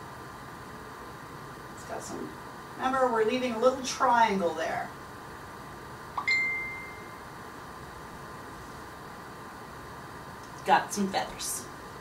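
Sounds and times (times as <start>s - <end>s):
short ding: 6.2s - 7.2s.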